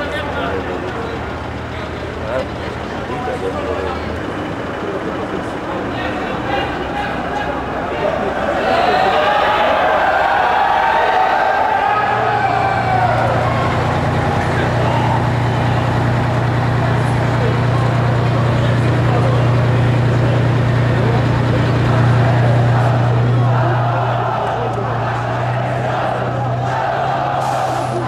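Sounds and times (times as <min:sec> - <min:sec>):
crowd voices: 0:00.0 - 0:28.0
fire engine engine running: 0:00.0 - 0:28.0.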